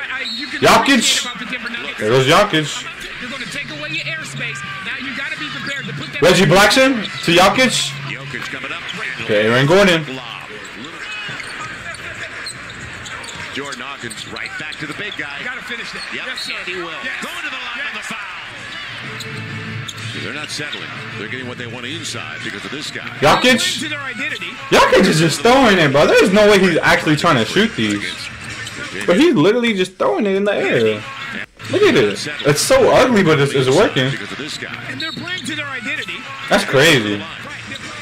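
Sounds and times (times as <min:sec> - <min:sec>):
people talking: 0:00.0 - 0:18.4, 0:20.2 - 0:38.0
arena crowd noise: 0:00.0 - 0:38.0
sneaker squeaks: 0:03.0 - 0:09.2, 0:10.4 - 0:16.4, 0:18.6 - 0:20.9, 0:27.5 - 0:29.1, 0:34.8 - 0:36.1.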